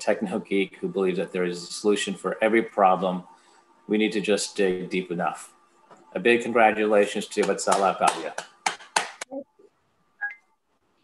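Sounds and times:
two-tone electronic beep: 10.2 - 10.5.

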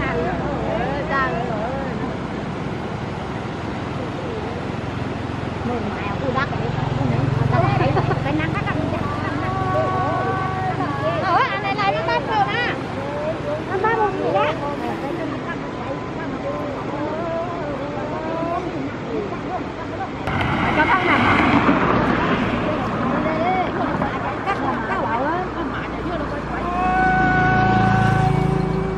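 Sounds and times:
motor vehicle passing: 0.0 - 19.2, 20.2 - 28.9
loud rush of noise: 0.0 - 28.9
women talking and calling out: 5.5 - 27.7.

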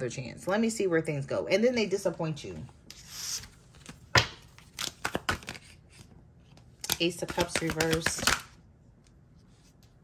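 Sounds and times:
card taps and flicks: 6.8 - 8.5.

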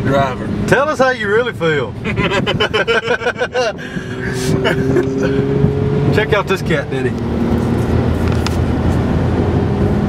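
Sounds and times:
road noise: 0.0 - 10.0
vehicle engine drone: 1.9 - 10.0
men laughing: 2.0 - 5.6.

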